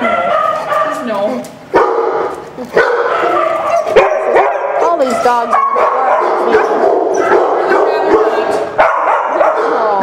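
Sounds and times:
dogs barking and yipping: 0.0s - 10.0s.

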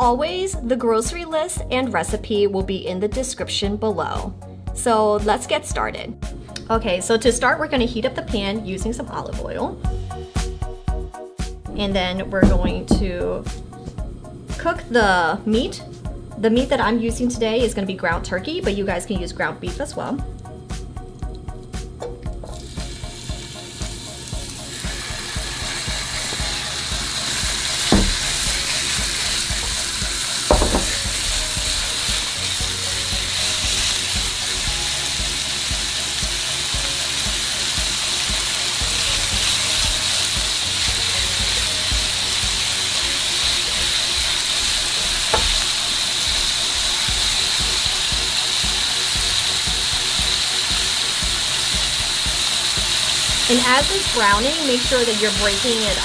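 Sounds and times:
spoon knocking against pan: 12.4s - 13.4s, 27.8s - 28.7s, 30.5s - 31.6s, 45.3s - 45.7s
meat sizzling in a frying pan: 20.4s - 56.0s.

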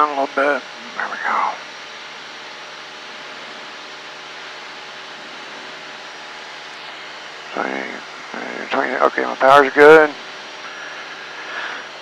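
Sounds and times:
airplane engine and propeller drone: 0.0s - 12.0s.

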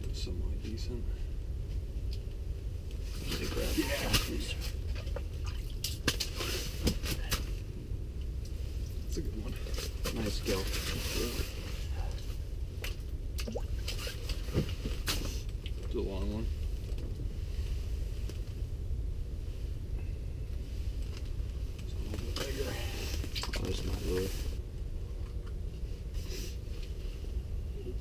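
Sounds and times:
steady low rumble: 0.0s - 28.0s.

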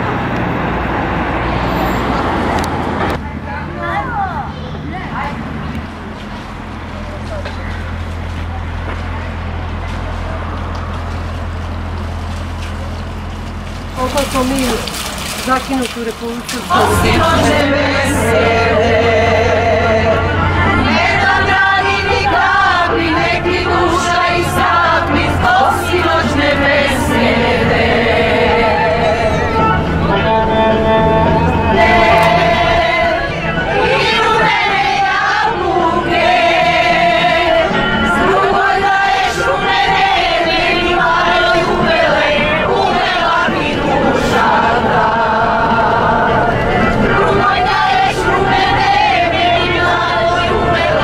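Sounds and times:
constant low hum: 2.6s - 51.0s
group singing together: 16.7s - 51.0s.

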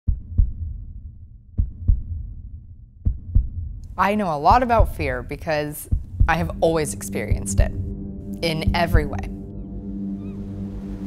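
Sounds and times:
heartbeat thumps: 0.1s - 9.6s
low steady rumble: 3.1s - 11.0s.

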